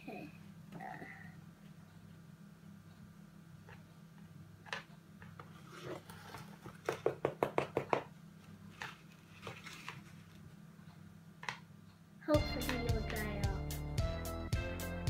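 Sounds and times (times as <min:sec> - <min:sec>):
low steady hum: 0:00.0 - 0:06.6
plastic spoon tapping and scraping: 0:06.8 - 0:08.1, 0:12.6 - 0:13.3.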